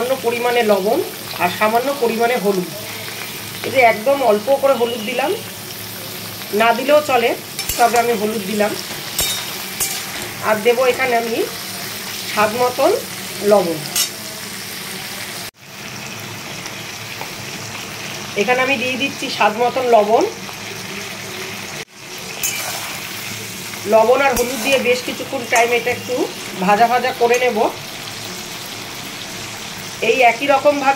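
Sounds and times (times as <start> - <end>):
prawns sizzling in hot oil: 0.0 - 30.9
metal spatula scraping pan: 7.5 - 11.1, 22.4 - 23.0, 24.3 - 26.1.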